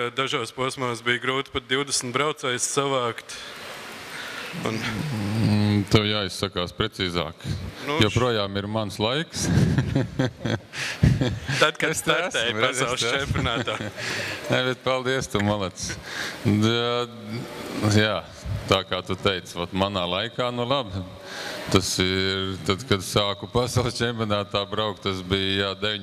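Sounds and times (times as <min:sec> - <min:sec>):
man speaking: 0:00.0 - 0:03.5, 0:04.5 - 0:09.7, 0:11.3 - 0:26.0
low hall murmur: 0:00.0 - 0:26.0
man humming: 0:04.5 - 0:05.9
man's drawn-out hesitation sound: 0:04.5 - 0:06.3, 0:07.0 - 0:08.8, 0:11.5 - 0:18.7.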